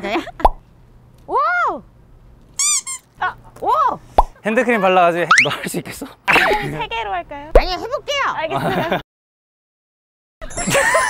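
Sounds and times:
high-pitched comic squeak: 2.6 - 3.1, 5.3 - 5.5.

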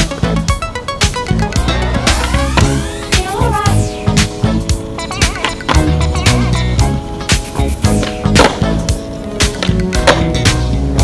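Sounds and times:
hip-hop music with beat: 0.0 - 11.0
skateboard wheels rolling: 4.4 - 11.0
skateboard clacks: 5.2 - 6.5, 7.3 - 10.7.

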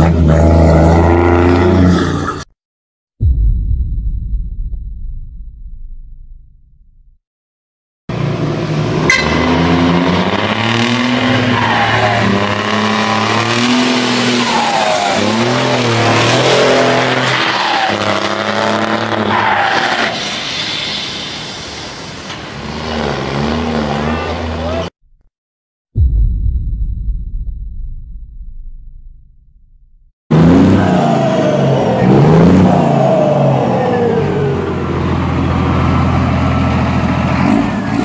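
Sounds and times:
truck diesel engine revving: 8.1 - 19.4, 22.5 - 25.0.

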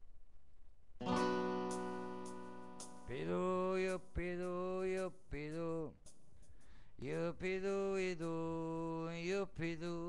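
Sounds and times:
guitar chord ringing: 1.0 - 3.4.

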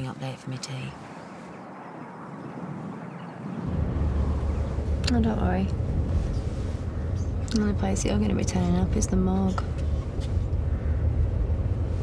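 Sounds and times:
deep cabin road rumble: 2.4 - 12.0
engine and tyre hiss: 3.7 - 12.0.

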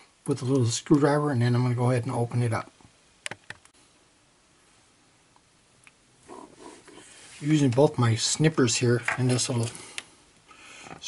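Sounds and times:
faint rustling: 6.2 - 8.2.

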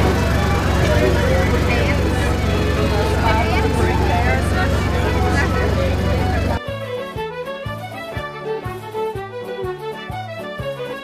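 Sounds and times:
engine drone: 0.0 - 6.6
voices: 0.0 - 6.6
folk music with fiddle: 0.0 - 11.0.

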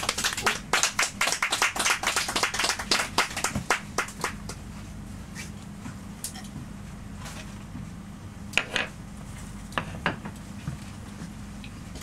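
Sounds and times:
audience clapping: 0.0 - 4.6.

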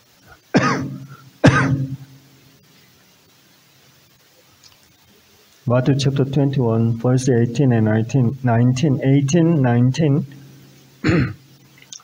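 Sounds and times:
man coughing: 0.6 - 2.0, 11.0 - 11.4.

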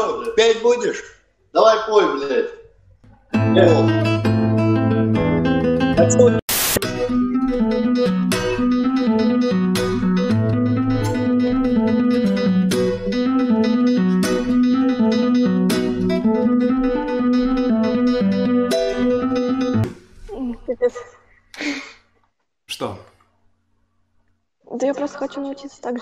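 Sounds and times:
fingerstyle acoustic guitar: 3.1 - 20.0.

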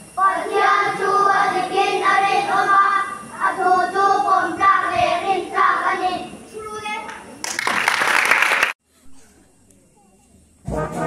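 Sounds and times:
children singing together: 0.2 - 6.4
people clapping: 7.0 - 8.8.

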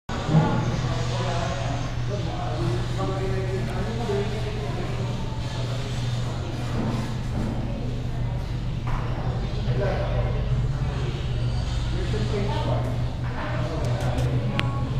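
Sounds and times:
steady low hum: 0.1 - 14.9
people talking indistinctly: 0.2 - 14.9.

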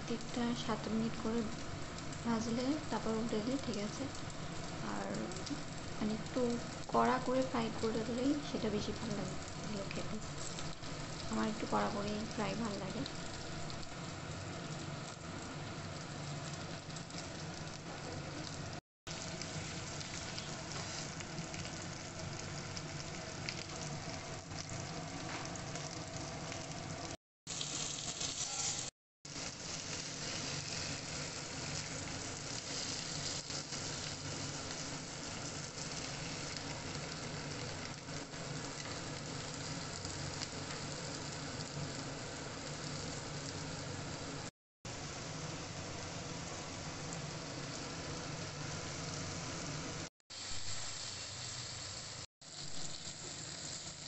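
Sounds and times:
fish and onions sizzling in pan: 0.0 - 54.0.

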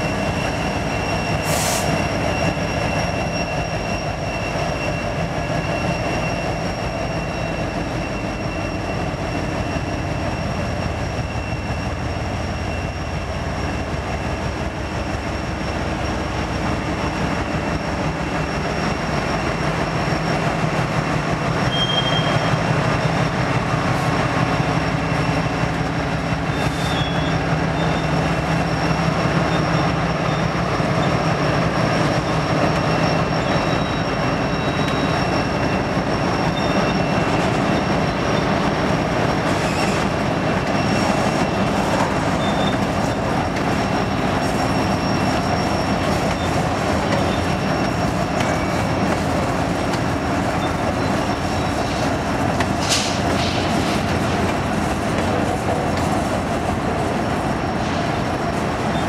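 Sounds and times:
wheel squeal: 0.0 - 22.8, 23.7 - 59.0
freight train rolling past: 0.0 - 59.0
locomotive engine hum: 0.0 - 59.0.

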